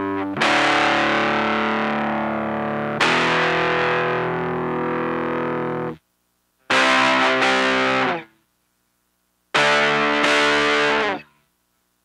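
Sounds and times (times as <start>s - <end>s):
distorted electric guitar chords: 0.0s - 6.0s, 6.6s - 8.4s, 9.5s - 11.4s.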